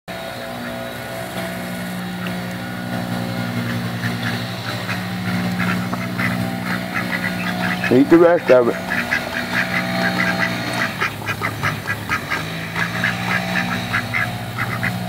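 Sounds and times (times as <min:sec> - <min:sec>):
ducks quacking: 0:00.1 - 0:15.0
golf cart engine idling: 0:00.1 - 0:15.0.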